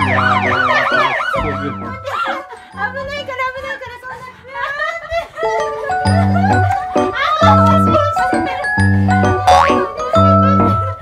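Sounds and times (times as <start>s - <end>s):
bouncy background music: 0.0s - 11.0s.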